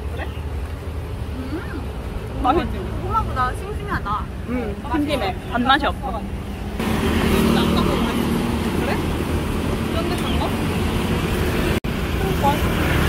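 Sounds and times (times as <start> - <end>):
cars and motorbikes passing: 0.0 - 13.0.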